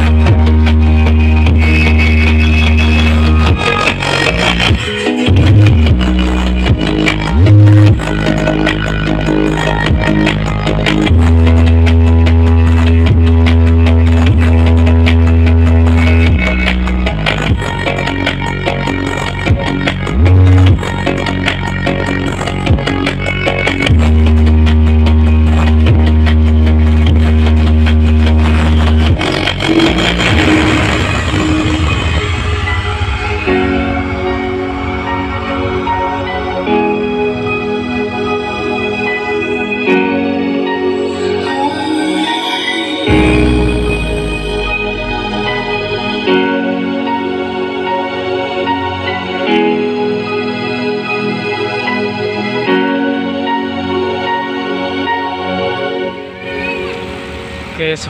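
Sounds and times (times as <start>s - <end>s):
long held bass notes: 0.0s - 56.3s
loud music through sound system: 0.0s - 58.0s.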